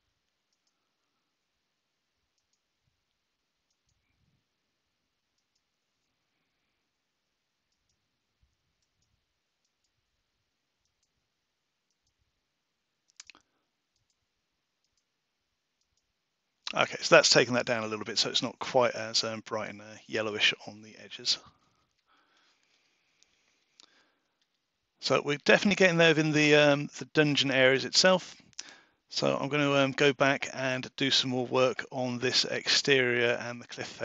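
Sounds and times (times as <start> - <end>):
computer mouse clicks: 0.5 - 0.9, 2.4 - 2.7, 7.7 - 8.0, 11.9 - 12.2, 13.1 - 14.2, 14.8 - 15.1.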